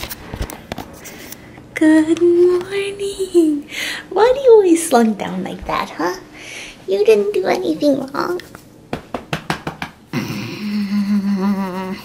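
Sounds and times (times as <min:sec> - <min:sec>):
low hum-like voice: 0:01.8 - 0:03.7, 0:10.2 - 0:12.0.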